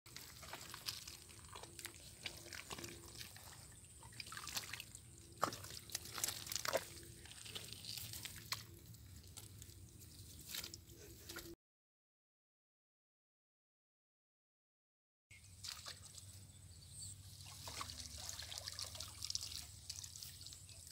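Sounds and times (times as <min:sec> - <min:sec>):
water dripping and splashing: 0:00.1 - 0:11.5, 0:15.6 - 0:16.4, 0:17.3 - 0:20.9.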